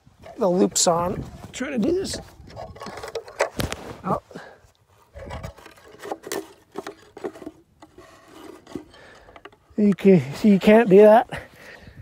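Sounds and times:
hands fumbling with birdhouse lid: 1.9 - 4.0, 5.1 - 10.0
rubbing against microphone: 4.9 - 9.2.

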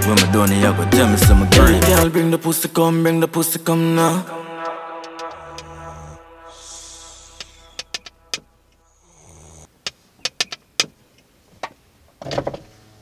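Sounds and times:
sharp clicks: 9.8 - 11.3.

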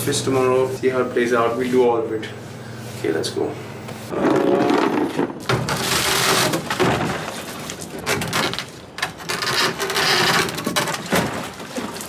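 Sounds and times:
plastic bag rustling: 4.1 - 12.0.

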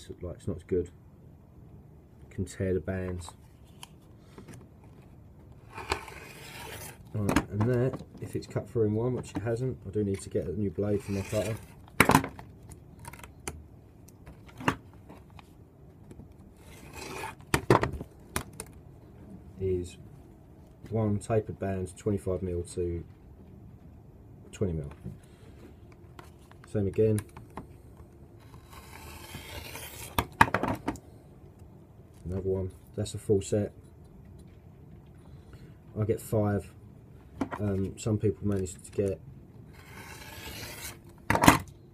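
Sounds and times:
rotary cutter scraping: 5.6 - 7.1, 10.9 - 11.8, 16.6 - 17.4, 28.4 - 30.2, 39.7 - 41.0.

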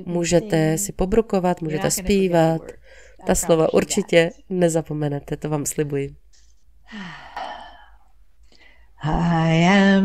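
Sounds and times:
woman sighing: 6.9 - 8.0.

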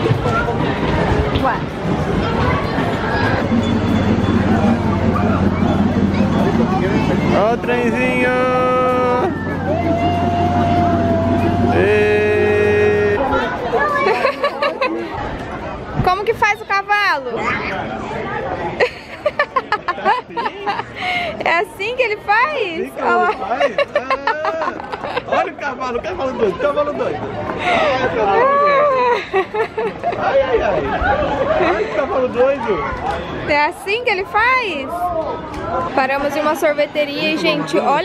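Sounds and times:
indistinct voices talking: 0.0 - 18.4
train motor hum: 1.8 - 13.2.

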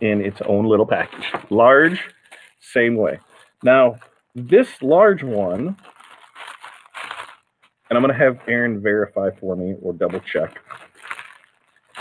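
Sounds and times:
plastic packaging crinkling: 0.1 - 9.0, 10.0 - 12.0.

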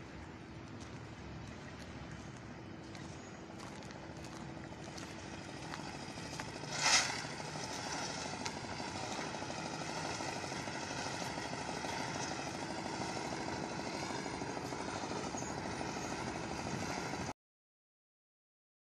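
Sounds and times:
mechanical drone with high tones: 2.2 - 17.3.

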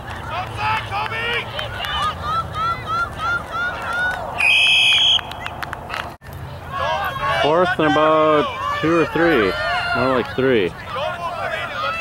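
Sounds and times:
spectators shouting: 0.3 - 5.3, 6.6 - 12.0
referee's whistle blast: 4.4 - 5.3.

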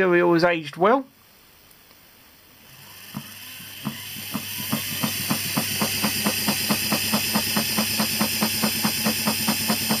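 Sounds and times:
gear motor humming: 2.6 - 10.0.

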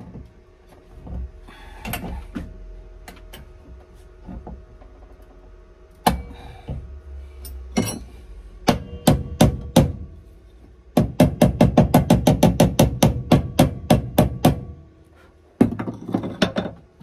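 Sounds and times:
hammer striking steel panel: 8.6 - 10.1.

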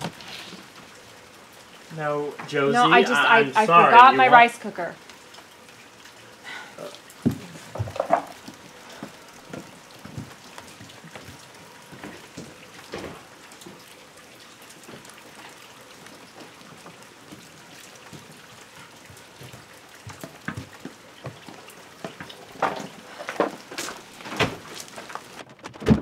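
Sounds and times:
soft knocks: 7.2 - 8.4.

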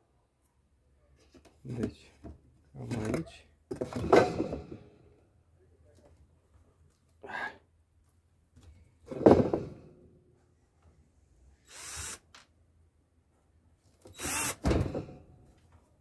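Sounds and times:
cordless drill driving screws: 11.7 - 12.4, 14.1 - 14.7.

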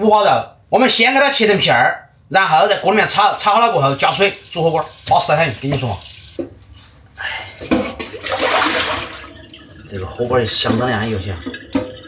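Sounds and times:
tap water splashing in sink: 4.0 - 6.6, 7.7 - 12.0.

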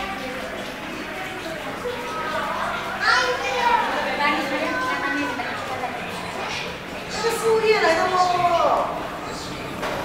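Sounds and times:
children talking and calling out: 0.0 - 9.0.

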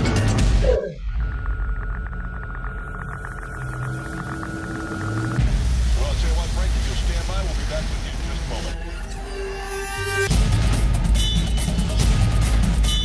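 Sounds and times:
music: 0.0 - 13.0.

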